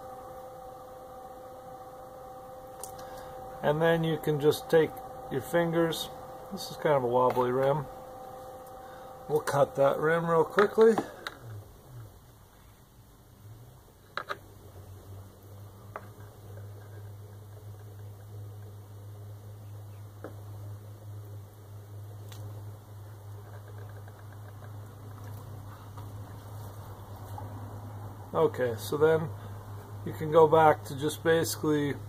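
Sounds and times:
pottery wheel motor humming: 0.0s - 32.0s.

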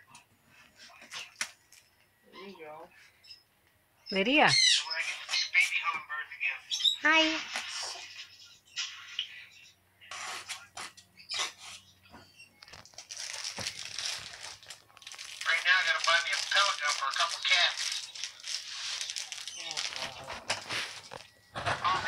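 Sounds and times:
plastic bag crinkling: 12.7s - 22.0s.

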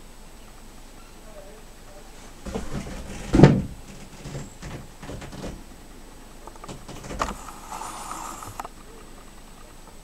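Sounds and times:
rustling: 2.0s - 5.8s, 6.4s - 9.7s
loud thud: 2.4s - 5.6s
soft knocks: 2.4s - 5.6s.

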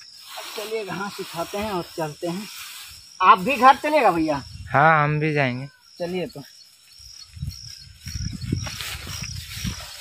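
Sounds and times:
cut grass rustling: 0.0s - 4.5s, 6.0s - 10.0s
faint insect drone: 0.0s - 10.0s.

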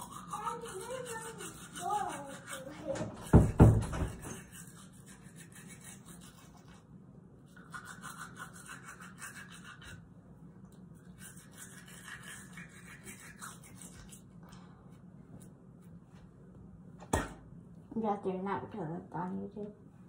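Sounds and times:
toothbrush scrubbing teeth: 0.0s - 14.5s.

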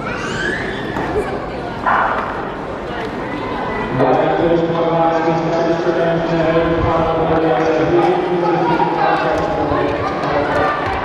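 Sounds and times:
high whining cry: 0.0s - 1.0s
crowd noise: 0.0s - 11.0s.

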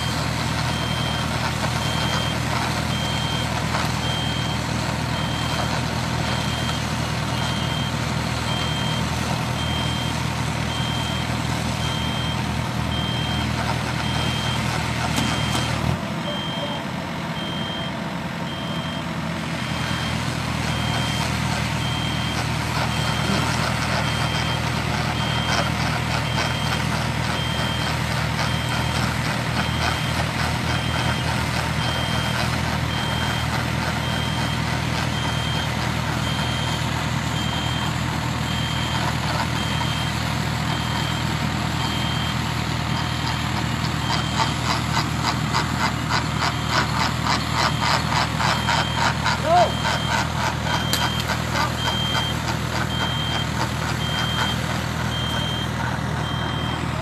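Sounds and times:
drilling rig engine running: 0.0s - 57.0s
high warning beeper: 15.2s - 19.1s, 21.8s - 25.6s.

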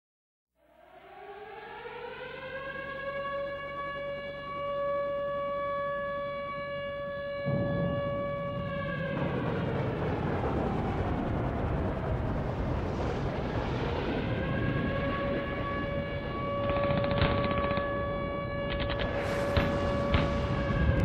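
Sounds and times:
siren wailing: 0.6s - 21.0s.

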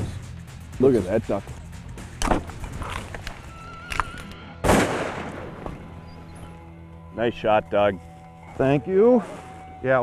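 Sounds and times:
shotgun shot: 4.6s - 5.7s.

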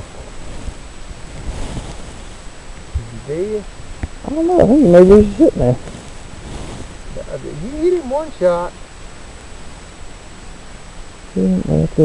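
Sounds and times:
wind buffeting microphone: 0.0s - 8.3s
faint high-pitched whine: 0.0s - 12.0s.

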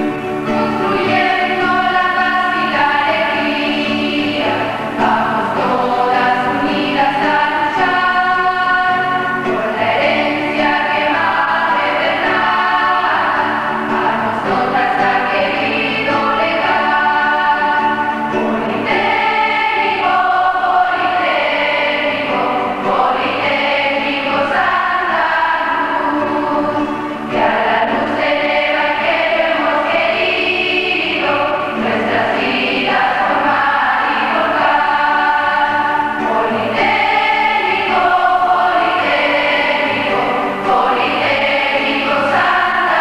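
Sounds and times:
choir singing a hymn: 0.0s - 43.0s.

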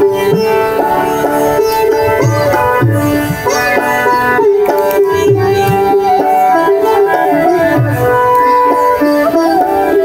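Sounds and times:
bamboo flute melody: 0.0s - 10.0s
harmonium: 0.0s - 10.0s
sitar: 0.0s - 10.0s
tabla: 0.0s - 10.0s.

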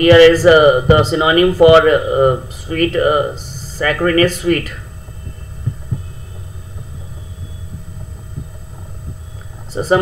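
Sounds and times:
low background rumble: 0.0s - 10.0s
soft low thumps: 0.0s - 10.0s.

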